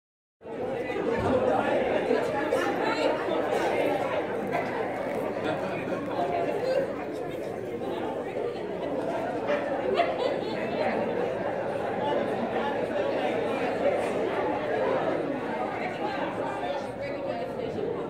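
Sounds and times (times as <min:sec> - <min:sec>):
crowd chattering in large hall: 0:00.4 - 0:18.0.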